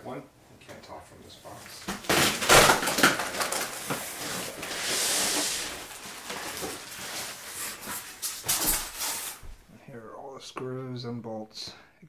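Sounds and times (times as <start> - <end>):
packaging rustling and crinkling: 1.8 - 9.6.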